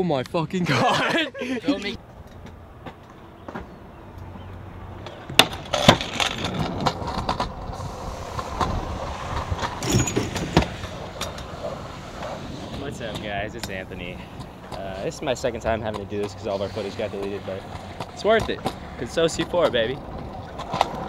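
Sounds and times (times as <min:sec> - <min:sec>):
scooter wheels rolling on concrete: 0:01.8 - 0:21.0
scooter clacking on ground: 0:17.7 - 0:21.0.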